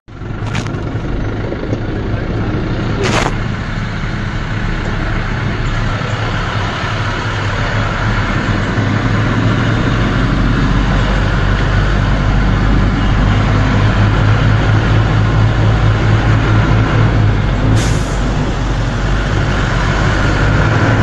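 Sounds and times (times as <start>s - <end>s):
truck and car engines rumbling: 0.1s - 21.0s
short hisses: 17.8s - 18.2s.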